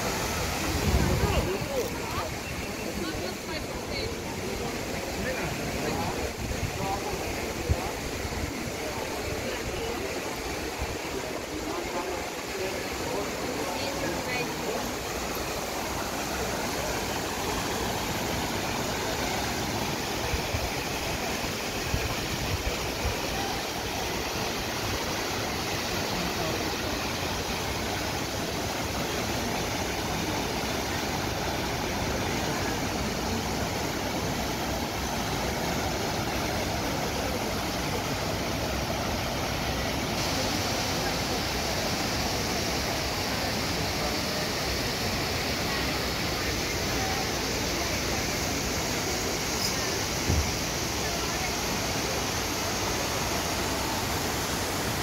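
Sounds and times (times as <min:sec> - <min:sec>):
crowd talking: 0:00.0 - 0:55.0
fountain water splashing: 0:00.0 - 0:55.0.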